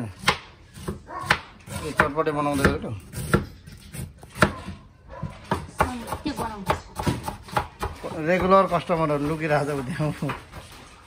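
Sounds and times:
knife chopping on wooden board: 0.0s - 9.3s.

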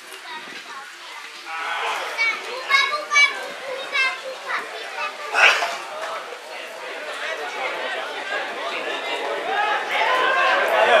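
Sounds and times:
crowd shouting and yelling: 1.3s - 11.0s
high-pitched shouts: 1.4s - 4.0s.

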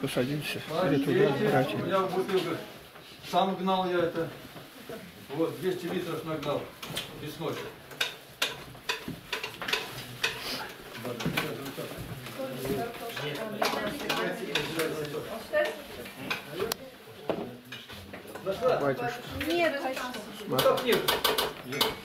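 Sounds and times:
dishes and cutlery clinking: 5.9s - 11.8s, 12.6s - 16.7s, 19.9s - 22.0s.

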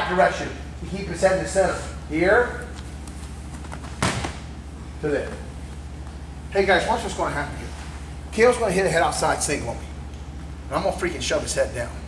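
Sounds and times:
steady low hum: 0.0s - 12.0s
sharp thud on wrestling mat: 4.0s - 4.4s.

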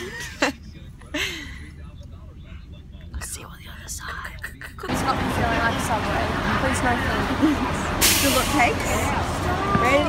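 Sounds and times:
whispered talk: 0.4s - 4.9s.

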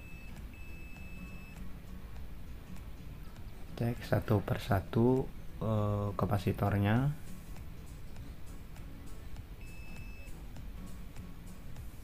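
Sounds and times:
multimeter continuity beeps: 0.0s - 1.7s, 9.6s - 10.4s.

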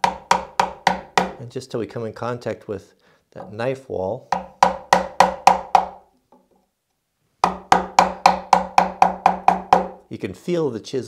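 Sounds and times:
mallet tapping a chisel into wood: 0.0s - 1.4s, 4.3s - 6.0s, 7.4s - 10.0s.

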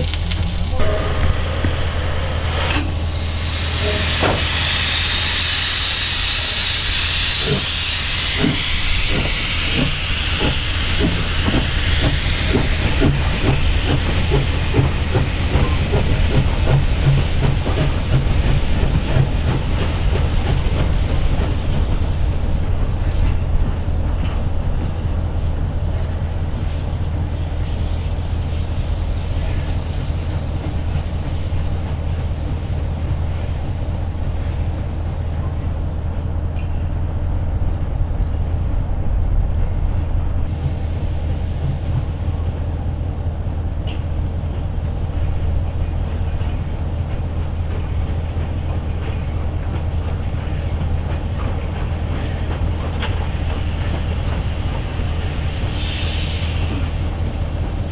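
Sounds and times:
steam hissing: 0.0s - 25.0s, 40.5s - 43.0s, 45.6s - 57.9s
locomotive exhaust beat: 0.0s - 57.9s.

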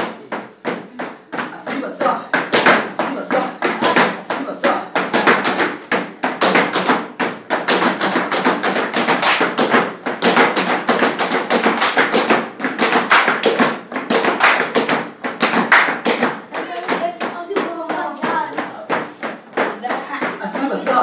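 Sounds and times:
hands clapping: 0.0s - 21.0s
hands slapping rubber boots: 0.0s - 21.0s.

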